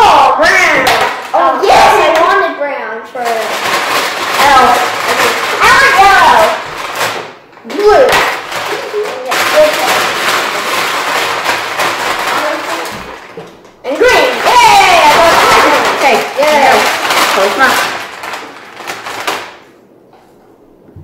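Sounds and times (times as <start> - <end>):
paper bag rustling: 3.2 - 19.8
voices: 4.3 - 6.7, 13.8 - 18.0.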